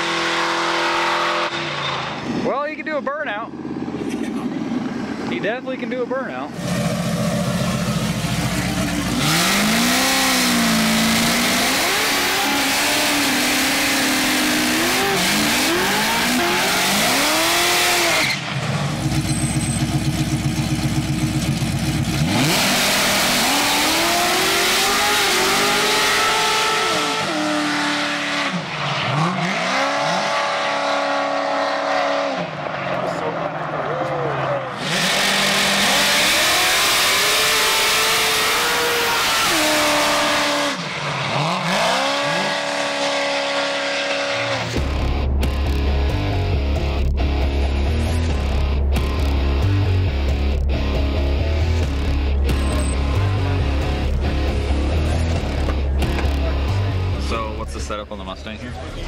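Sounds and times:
car engines revving: 0.0s - 59.0s.

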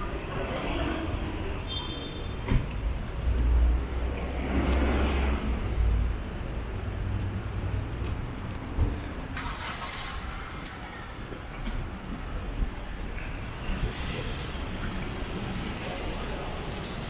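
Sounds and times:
traffic hum: 0.0s - 17.0s.

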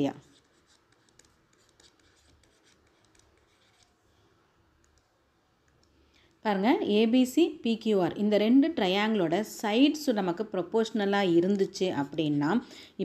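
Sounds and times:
woman speaking: 0.0s - 0.3s, 6.5s - 13.0s.

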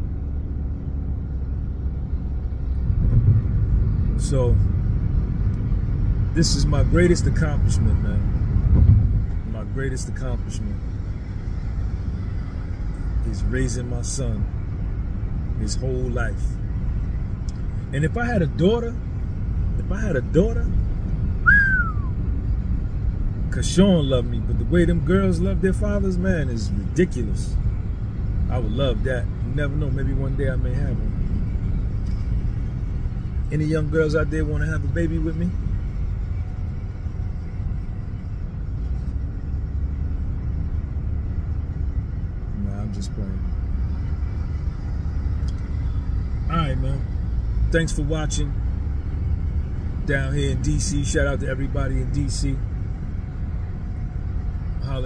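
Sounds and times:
low road rumble inside a car: 0.0s - 55.0s
man speaking: 4.2s - 4.6s, 6.4s - 8.3s, 13.3s - 14.5s, 23.6s - 27.6s, 28.5s - 31.2s, 33.5s - 35.5s, 42.6s - 43.4s, 46.5s - 47.0s, 50.1s - 52.6s
short sliding whistle: 21.5s - 22.1s.

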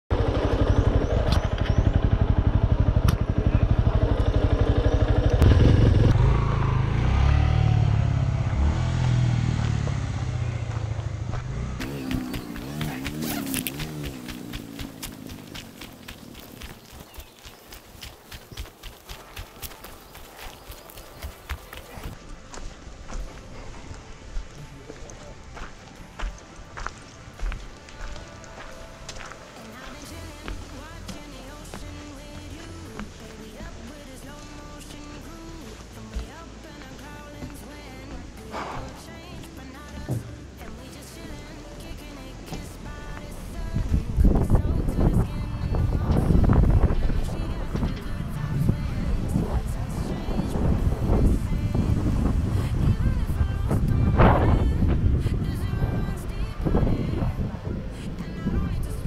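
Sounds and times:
motorcycle engine running: 0.1s - 22.2s.

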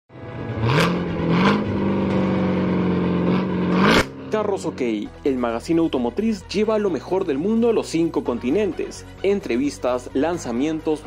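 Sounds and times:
car engine revving: 0.1s - 5.2s.

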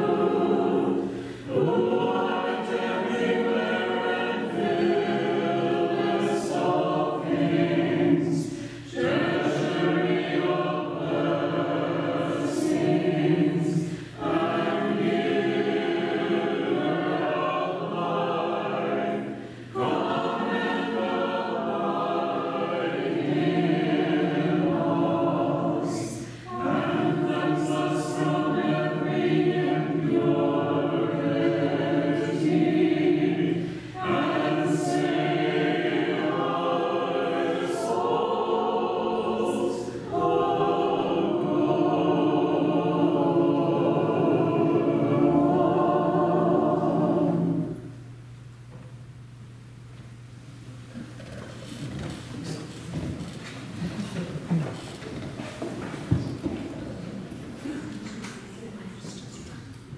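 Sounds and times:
voices singing chant a cappella: 0.0s - 48.1s.

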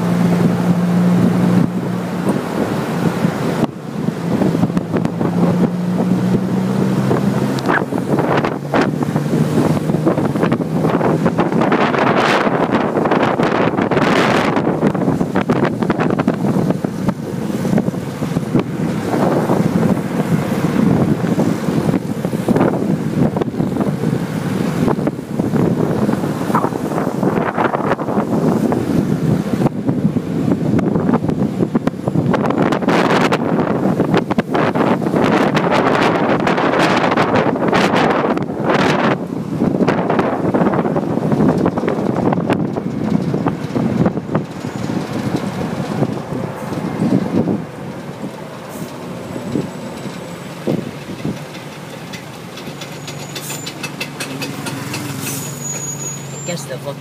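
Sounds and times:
wind buffeting microphone: 0.0s - 55.2s
vehicle road and engine noise: 0.0s - 57.0s.

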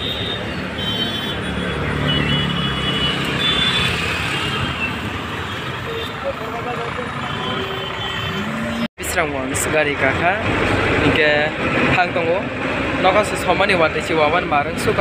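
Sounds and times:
traffic din of engines and tyres: 0.0s - 15.0s
voices: 5.8s - 15.0s.

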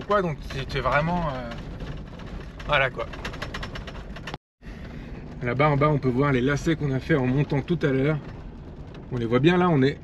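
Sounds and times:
engine and road rumble: 0.0s - 10.0s.

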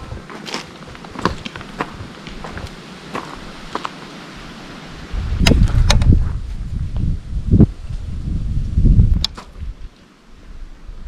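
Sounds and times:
wind buffeting microphone: 0.0s - 3.8s, 4.4s - 11.0s
footsteps on stony path: 0.0s - 4.2s.

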